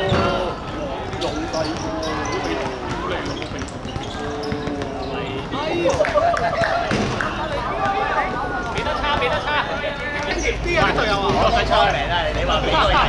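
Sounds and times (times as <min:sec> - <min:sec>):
players calling out: 0:00.0 - 0:13.0.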